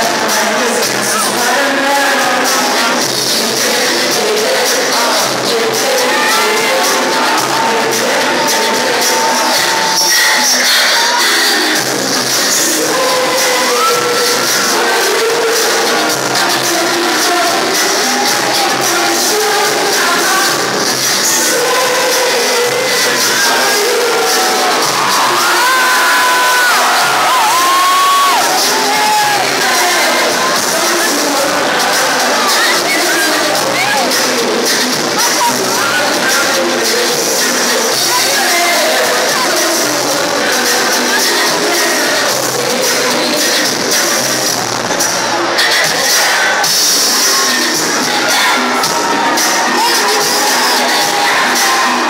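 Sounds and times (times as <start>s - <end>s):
crowd noise: 0.0s - 52.0s
live pop music: 0.0s - 52.0s
singers on microphones: 0.0s - 52.0s.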